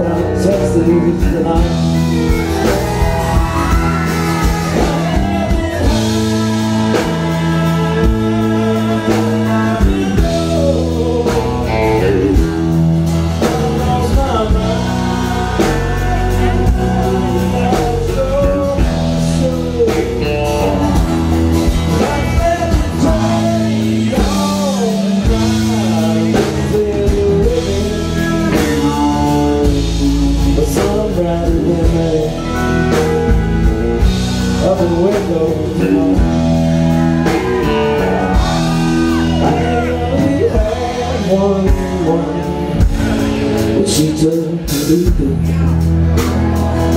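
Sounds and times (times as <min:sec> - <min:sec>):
man singing into microphone: 0:00.0 - 0:45.9.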